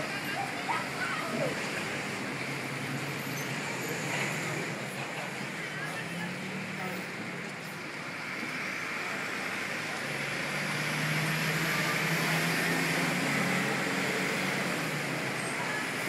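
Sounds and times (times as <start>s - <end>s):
road traffic: 0.0s - 16.0s.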